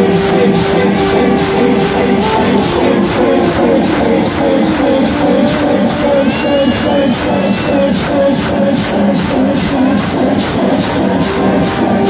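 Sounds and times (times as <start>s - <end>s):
fast even beat: 0.0s - 12.0s.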